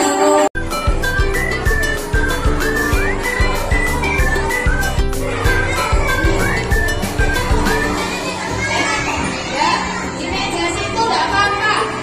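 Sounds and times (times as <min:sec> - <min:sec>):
crowd of children and women chattering: 0:00.0 - 0:12.0
faint music: 0:00.0 - 0:12.0.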